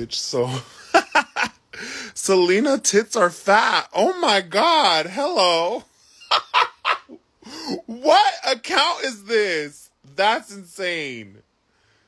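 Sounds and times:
man laughing hard: 0.5 - 2.0, 6.1 - 8.3.

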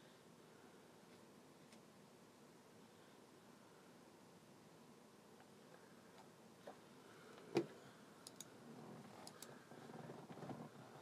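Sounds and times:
faint high ticks: 8.2 - 8.5, 9.2 - 9.6.

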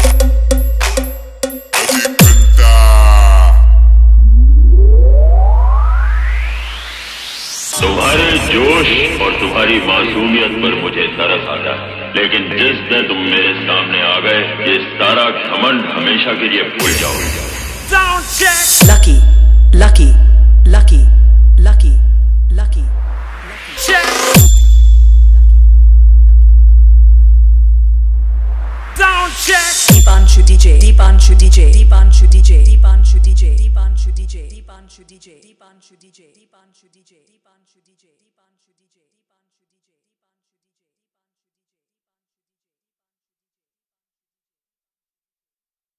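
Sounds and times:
deep sub-bass tone: 2.2 - 7.1, 7.8 - 12.9, 16.8 - 34.8
falling synth tone: 3.7 - 12.0, 22.6 - 25.7
rising sweep tone: 3.9 - 12.4, 22.1 - 26.2, 27.8 - 30.1.

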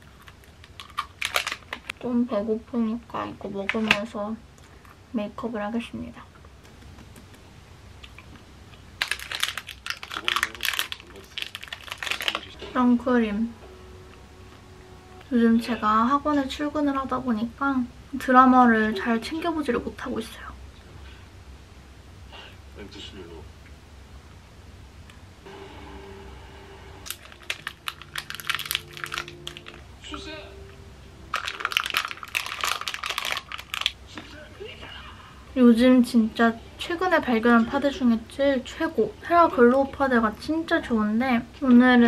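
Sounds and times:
snack wrapper crinkling: 0.0 - 2.0, 8.0 - 12.6, 27.0 - 29.9, 31.3 - 34.0
faint low tone: 12.5 - 17.0, 28.8 - 31.4.

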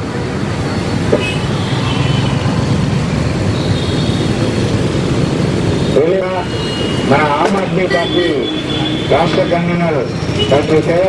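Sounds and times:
rumble of passing vehicles: 0.0 - 11.0.

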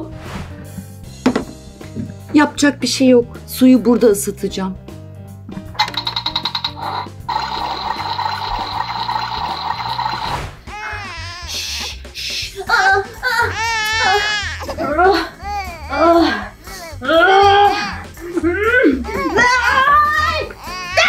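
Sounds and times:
background music: 0.0 - 21.0
toy stove ticking and tone: 5.8 - 10.0
woman wailing: 12.6 - 21.0.

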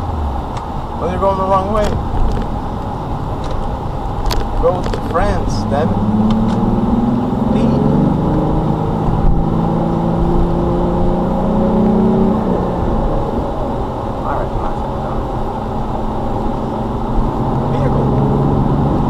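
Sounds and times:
car engine accelerating: 0.0 - 19.0.

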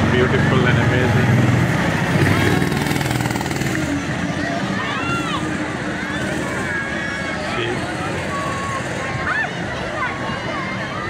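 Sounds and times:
crowd chatter: 0.0 - 11.0
vehicle engine running: 0.0 - 11.0
children's voices: 3.8 - 11.0.

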